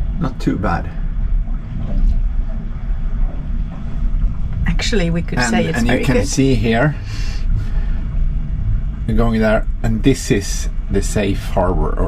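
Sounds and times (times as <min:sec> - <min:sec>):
low rumble inside boat cabin: 0:00.0 - 0:12.0.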